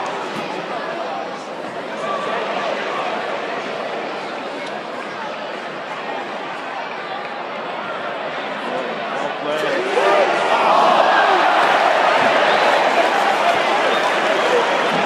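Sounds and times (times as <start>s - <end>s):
stadium crowd shouting and chanting: 0.0s - 15.0s.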